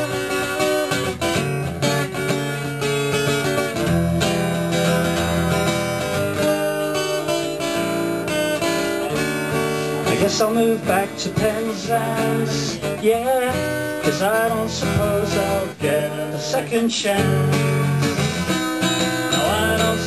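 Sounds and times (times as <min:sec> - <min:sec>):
acoustic guitar strumming: 0:00.0 - 0:20.0
person singing: 0:09.9 - 0:18.4, 0:19.1 - 0:20.0.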